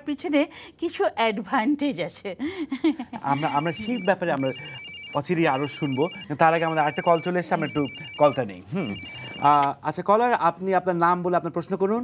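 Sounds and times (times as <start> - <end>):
person speaking: 3.2 - 9.9
electronic telephone ringing: 3.3 - 9.6.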